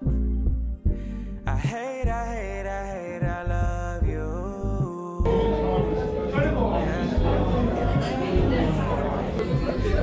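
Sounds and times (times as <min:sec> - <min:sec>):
background music with low beat: 0:00.0 - 0:10.0
restaurant chatter: 0:05.3 - 0:10.0.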